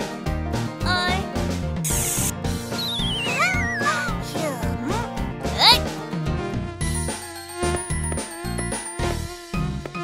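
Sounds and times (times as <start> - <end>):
cheerful background music: 0.0 - 10.0
aerosol can spray hiss: 1.9 - 2.3
wobbling whistle sliding down: 2.8 - 3.8.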